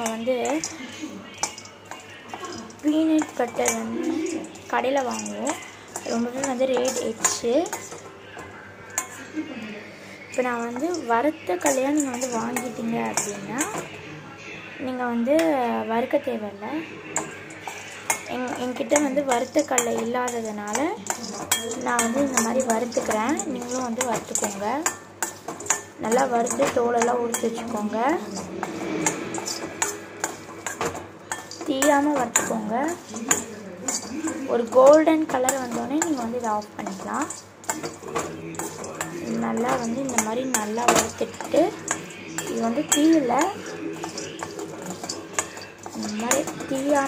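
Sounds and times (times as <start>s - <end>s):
spoon stirring nuts in a wok: 0.0s - 9.4s, 10.0s - 14.1s, 14.8s - 47.0s.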